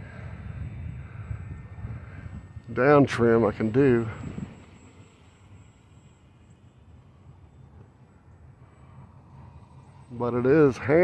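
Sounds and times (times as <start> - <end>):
distant electric model plane humming: 0.0 - 11.0.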